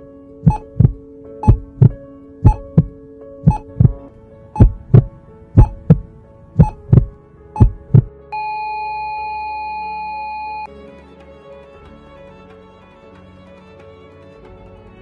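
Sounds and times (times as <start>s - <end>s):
heartbeat thumps: 0.5s - 2.9s, 3.5s - 4.0s, 4.6s - 8.1s.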